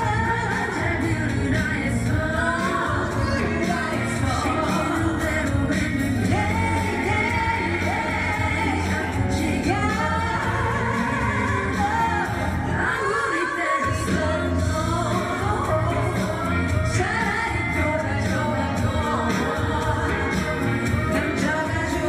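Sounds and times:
woman singing pop song: 0.0 - 22.0
band accompaniment: 13.9 - 22.0.

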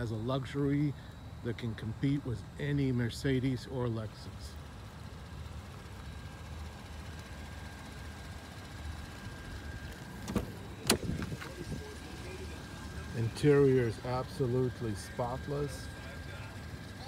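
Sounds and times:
faint high steady tone: 0.0 - 17.0
steady low hum: 0.0 - 17.0
car door latch clicks: 10.2 - 11.3.

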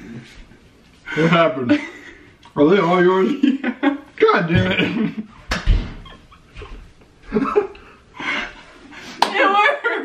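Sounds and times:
person laughing: 6.0 - 8.5.

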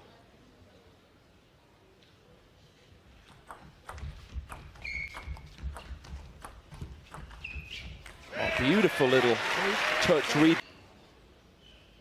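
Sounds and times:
table tennis ball clicking: 3.3 - 8.3
footwork thuds: 3.5 - 8.2
shoe squeaks on court floor: 4.5 - 6.0, 7.1 - 8.2.

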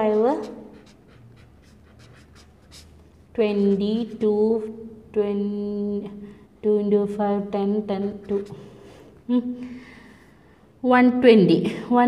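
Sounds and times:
marker pen writing on paper: 0.0 - 4.4, 8.0 - 8.9.

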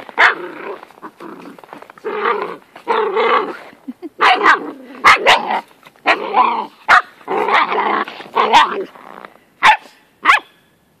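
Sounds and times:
dog barking: 0.2 - 0.4, 4.2 - 6.2, 6.9 - 7.7, 8.4 - 8.8, 9.6 - 10.5.

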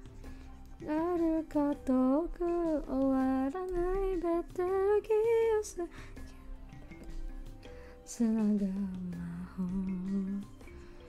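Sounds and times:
quiet background music: 0.0 - 11.0
woman singing: 0.8 - 6.0, 8.0 - 10.7.

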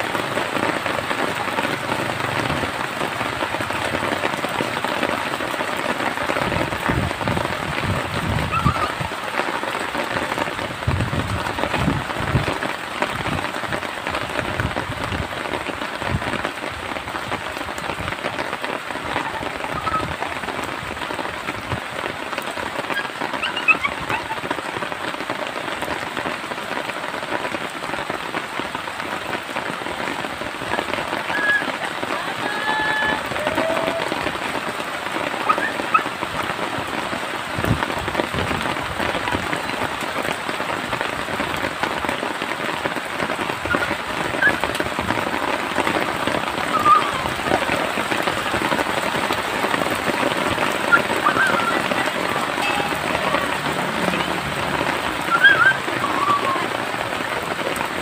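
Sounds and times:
rain-like patter: 0.0 - 58.0.

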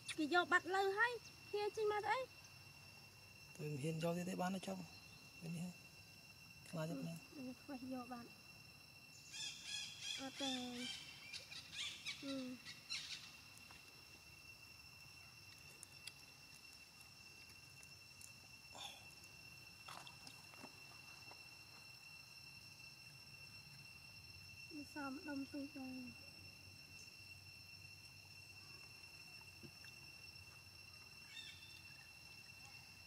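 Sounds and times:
insects droning: 0.0 - 33.0.

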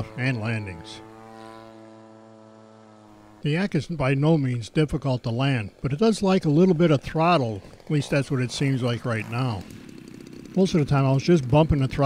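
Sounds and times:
model plane engine drone: 0.0 - 12.0.

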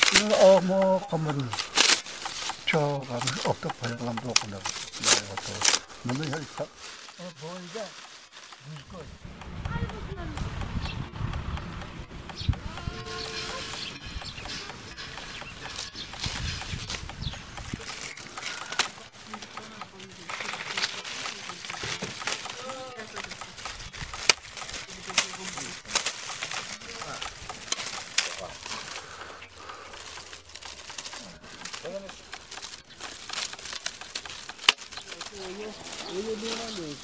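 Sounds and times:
reed strips clicking and rustling: 0.0 - 10.7, 11.3 - 37.0.

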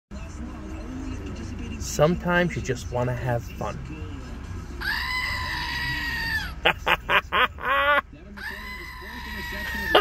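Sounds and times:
toy goat screaming: 4.8 - 6.6, 8.4 - 10.0.

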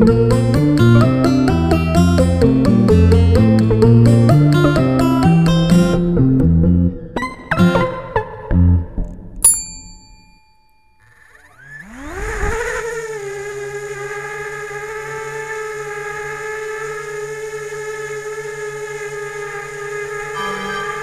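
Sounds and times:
short ding: 9.4 - 11.0, 20.4 - 21.0
drone motors whining: 11.0 - 21.0.

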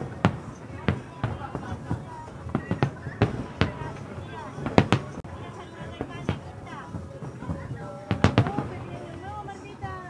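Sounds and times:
distant firework booms: 0.0 - 10.0
low rumble of firework bursts: 0.0 - 10.0.

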